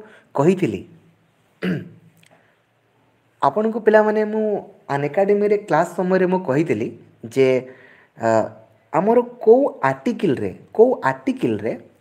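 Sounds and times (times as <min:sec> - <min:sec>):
man speaking: 0:00.0 - 0:02.1, 0:03.4 - 0:12.0.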